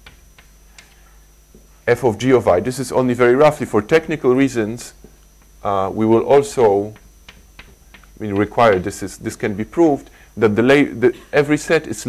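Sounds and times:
chalk tapping on blackboard: 0.0s - 1.0s, 6.9s - 9.2s
man talking: 1.9s - 5.0s, 5.6s - 7.0s, 8.2s - 12.0s.

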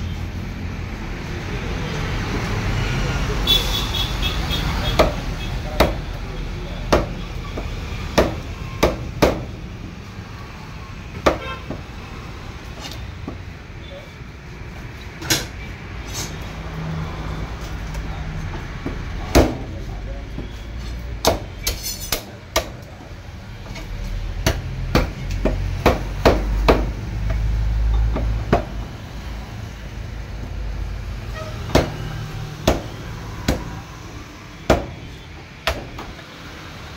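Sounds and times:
cleaver chopping fish on wood: 5.8s - 6.0s, 6.9s - 7.2s, 8.2s - 9.5s, 21.2s - 21.5s, 24.4s - 26.9s, 31.7s - 32.0s, 32.6s - 32.9s, 34.7s - 35.0s, 35.6s - 36.0s.

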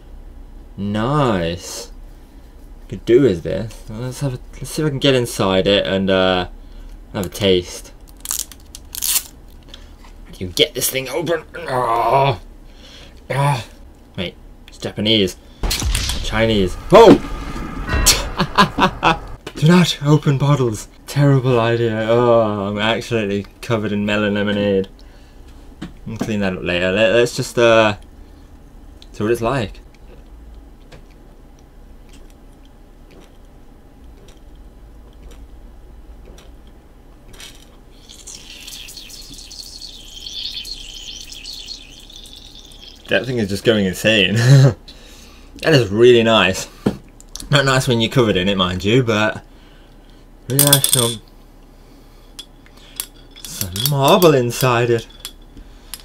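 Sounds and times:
high wavering sound: 15.7s - 19.4s, 38.0s - 43.3s
soda sloshing in a bottle: 38.0s - 43.3s.

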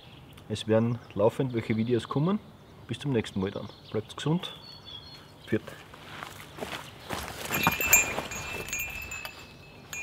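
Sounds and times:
metal garden bells clinking: 7.4s - 10.0s.

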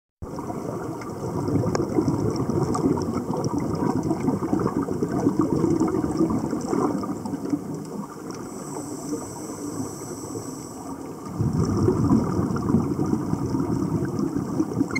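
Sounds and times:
underwater air bubbles gurgling: 0.2s - 14.9s.

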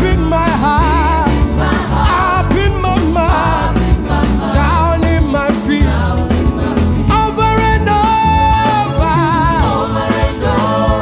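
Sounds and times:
gospel band playing: 0.0s - 11.0s.

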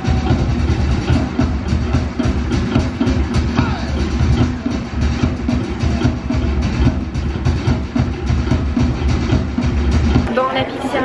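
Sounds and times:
fast drumming with heavy beat: 0.0s - 11.0s.

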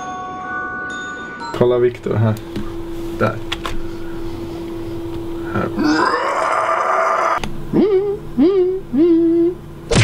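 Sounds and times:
person humming notes: 7.7s - 9.7s.

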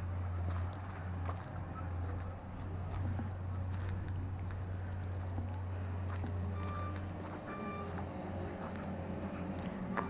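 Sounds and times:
machinery engine running: 0.0s - 10.0s
short electronic beeps: 6.5s - 8.0s.

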